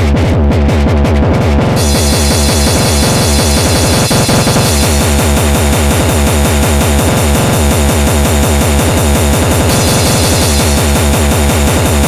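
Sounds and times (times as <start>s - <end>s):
fast distorted kick drums: 0.0s - 12.0s
harsh high noise: 1.7s - 12.0s.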